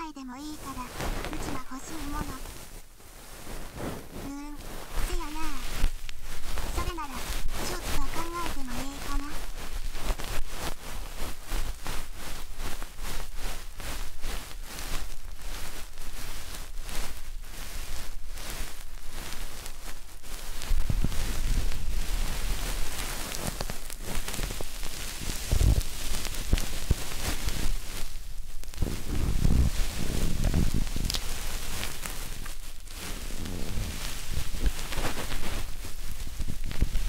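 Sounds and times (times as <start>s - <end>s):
ear pick brushing microphone: 0.0s - 37.0s.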